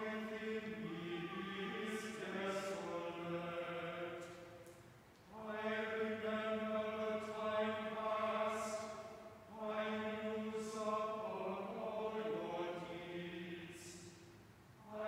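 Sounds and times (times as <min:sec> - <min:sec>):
choir chanting: 0:00.0 - 0:04.6, 0:05.3 - 0:15.0.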